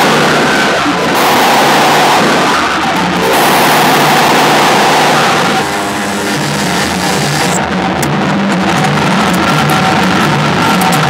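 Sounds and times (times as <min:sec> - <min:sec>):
wavering low drone: 0:00.0 - 0:08.3
dense electronic hiss: 0:00.0 - 0:08.6.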